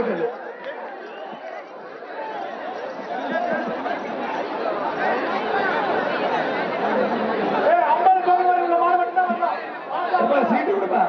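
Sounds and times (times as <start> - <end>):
crowd shouting and chattering: 0.0 - 11.0.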